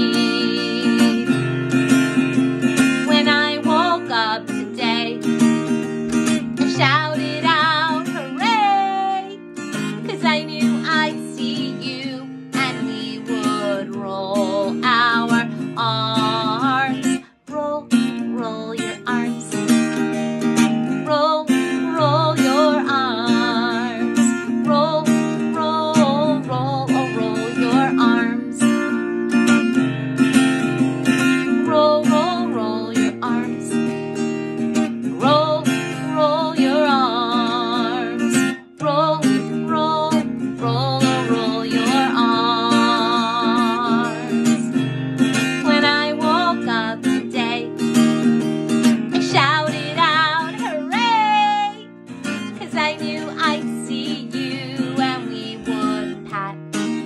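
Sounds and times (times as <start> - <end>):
woman singing: 0.0 - 29.6, 30.6 - 57.0
acoustic guitar strumming: 0.0 - 57.0.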